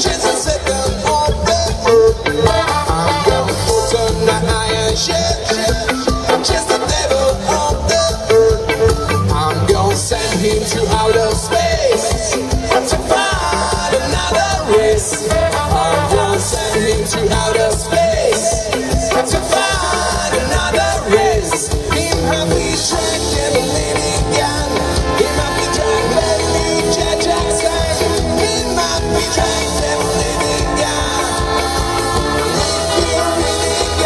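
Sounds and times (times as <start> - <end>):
ska band playing live: 0.0 - 34.0.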